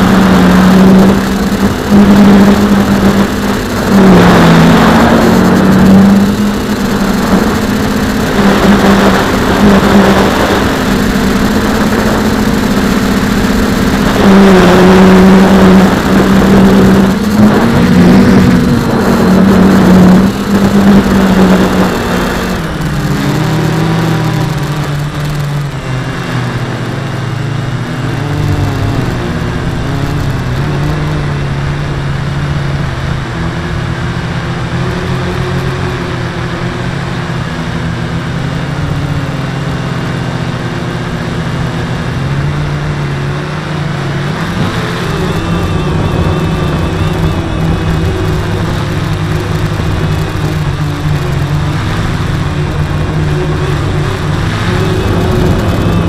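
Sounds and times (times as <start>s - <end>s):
drone propellers buzzing: 0.0s - 56.0s
wind noise rushes: 42.6s - 56.0s.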